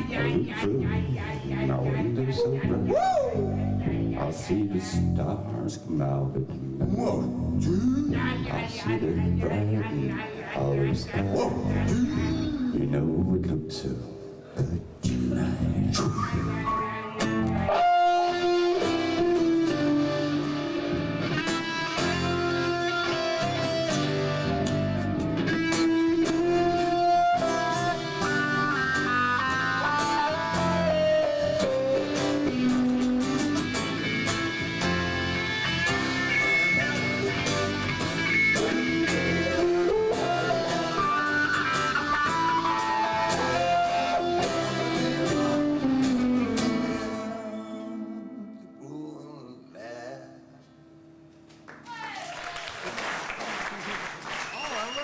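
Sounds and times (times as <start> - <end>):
electric guitar melody: 16.0 - 49.2
rock band playing: 17.2 - 47.6.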